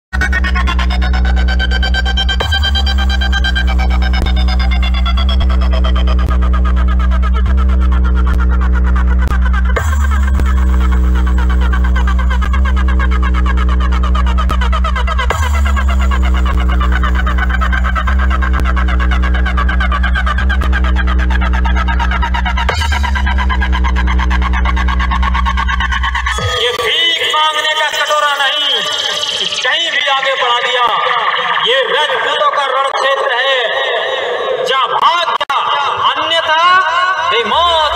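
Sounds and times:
loud electronic dance music: 0.1 - 37.9.

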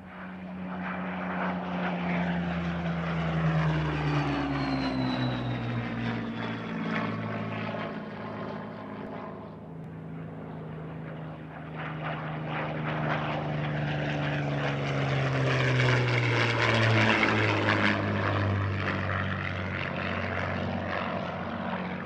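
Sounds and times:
propeller plane engine fly-by: 0.0 - 22.0.

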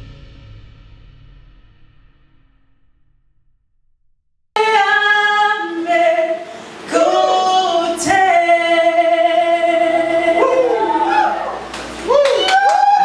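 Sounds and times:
voices singing sustained notes: 4.6 - 11.7.

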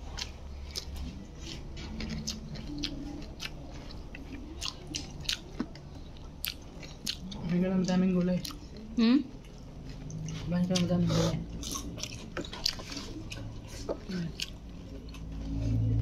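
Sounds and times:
person chewing food: 0.0 - 16.0.

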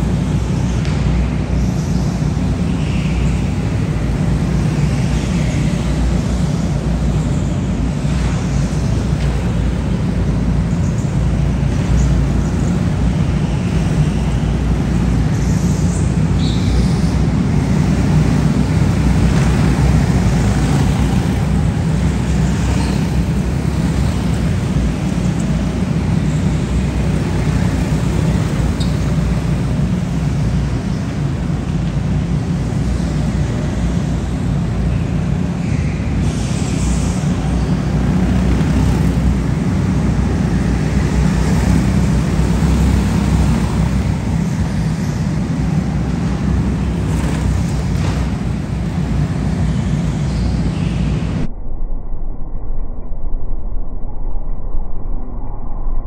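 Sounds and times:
go-karts droning in a hall: 0.0 - 51.5.

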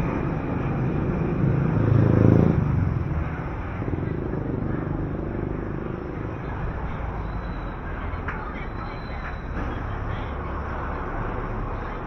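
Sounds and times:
general traffic noise: 0.0 - 12.0
vehicle engine passing by: 0.0 - 12.0.

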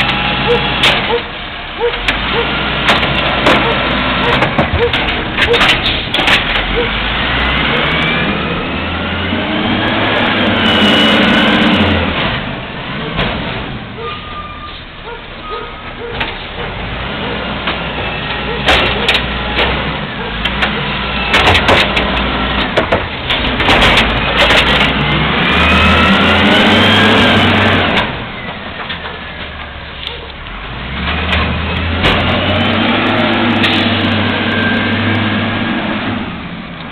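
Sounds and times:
cart banging on hopper: 0.0 - 14.4, 15.6 - 29.8, 30.8 - 36.9
diesel engine revving: 0.0 - 36.9.

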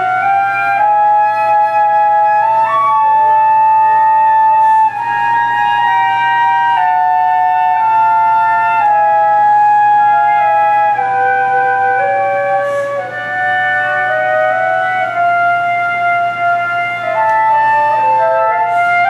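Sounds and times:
two flutes playing slow duet: 0.0 - 19.0.

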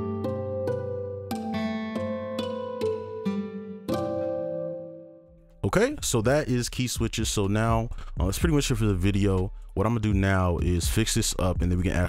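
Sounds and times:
held low chord notes: 0.0 - 5.5
plucked guitar melody: 0.0 - 5.5.

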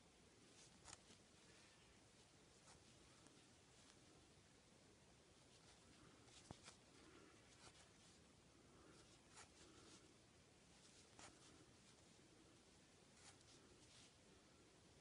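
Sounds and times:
crochet hook pulling yarn: 0.5 - 1.7, 10.7 - 12.1.

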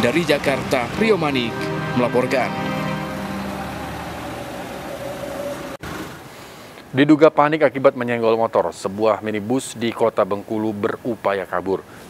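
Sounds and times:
vehicle engines idling: 0.0 - 5.8
road traffic noise: 0.0 - 6.7.

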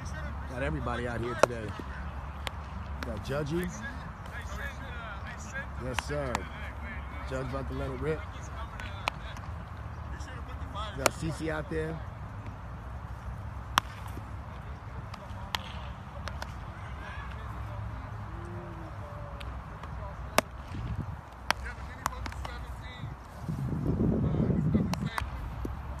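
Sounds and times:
baseballs popping into leather gloves: 13.6 - 14.4, 19.2 - 22.7.

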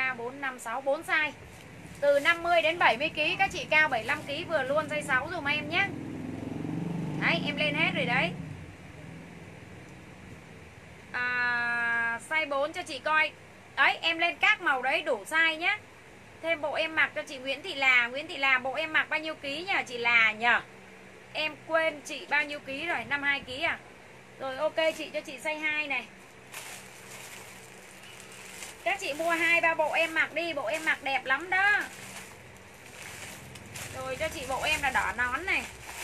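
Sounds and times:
low steady hum: 0.0 - 6.5, 7.1 - 36.0
low room noise: 0.0 - 36.0
plastic bags rustling: 26.2 - 36.0.

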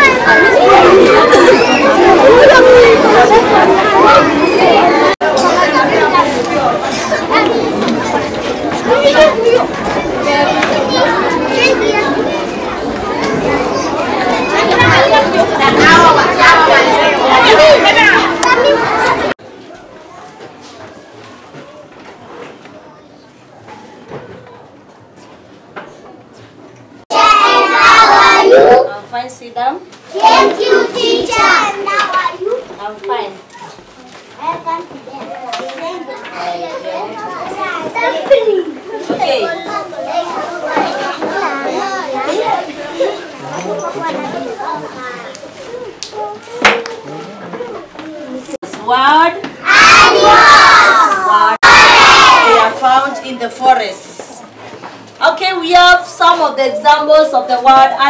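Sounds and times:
young children talking and calling: 0.0 - 58.0.

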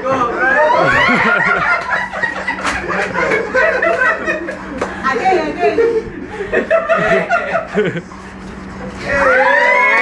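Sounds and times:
young people laughing: 0.3 - 8.3
people talking: 4.9 - 6.2.

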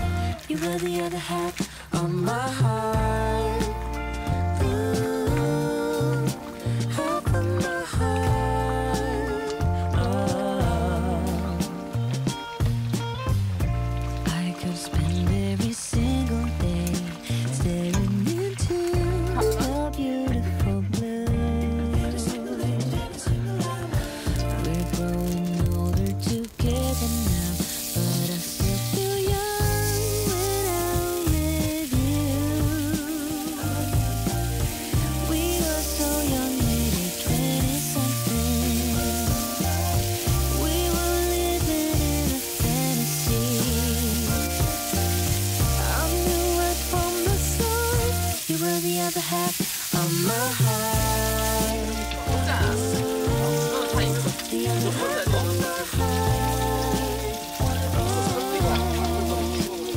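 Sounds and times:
pop music with bass: 0.0 - 59.9
meat sizzling on a grill pan: 2.9 - 20.0, 21.3 - 59.9.

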